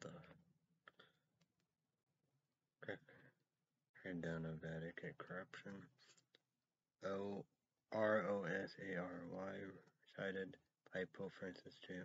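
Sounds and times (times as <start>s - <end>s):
man speaking quietly: 4.0s - 6.1s, 7.0s - 7.4s, 8.0s - 12.0s.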